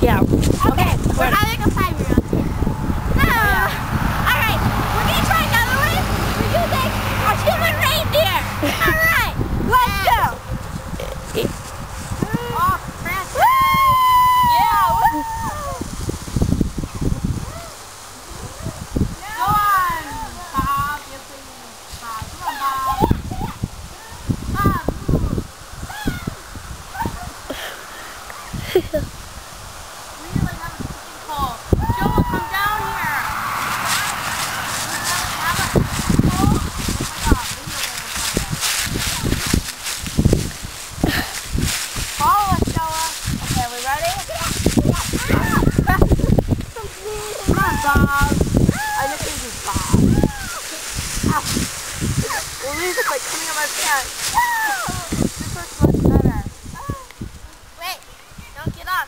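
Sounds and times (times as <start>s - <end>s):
plastic sled dragged over leaves: 0.0s - 59.0s
children shouting and squealing: 0.7s - 10.5s, 12.1s - 16.1s, 16.8s - 20.8s, 22.4s - 28.6s, 30.5s - 57.3s
dry leaves rustling and crunching: 10.4s - 14.8s, 32.4s - 56.8s.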